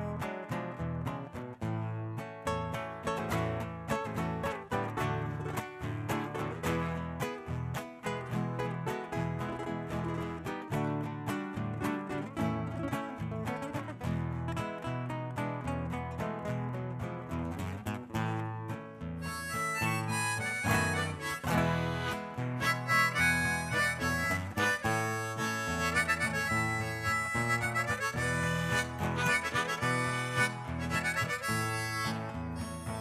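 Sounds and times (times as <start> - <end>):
classical guitars playing folk tune: 0.0 - 33.0
harmonica melody: 19.2 - 33.0.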